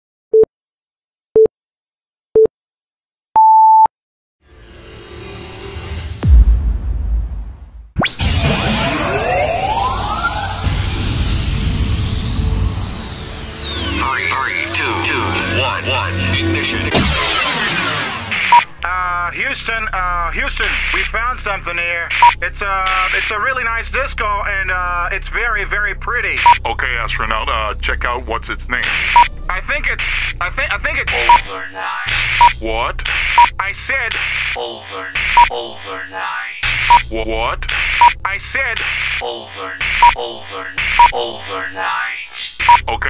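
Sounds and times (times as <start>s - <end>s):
long high beep: 12.5s - 17.5s, 29.1s - 29.3s, 31.2s - 32.6s, 36.7s - 37.0s
man speaking over radio: 13.9s - 17.4s, 18.7s - 43.0s
short electronic beep: 22.2s - 22.4s, 28.9s - 29.3s, 31.1s - 31.5s, 36.7s - 37.1s, 40.9s - 41.2s, 42.6s - 42.9s
short low countdown beeps: 22.2s - 22.4s, 26.4s - 26.7s, 28.9s - 29.3s, 31.1s - 31.5s, 32.1s - 33.6s, 35.2s - 35.6s, 36.7s - 37.1s, 37.8s - 38.2s, 39.9s - 40.2s, 40.8s - 41.3s, 42.6s - 42.9s.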